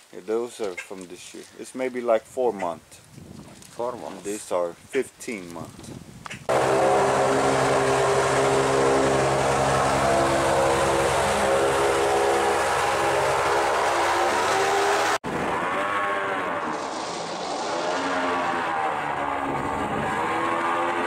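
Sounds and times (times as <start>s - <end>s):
airboat engine and propeller: 6.5s - 16.0s, 17.0s - 21.0s.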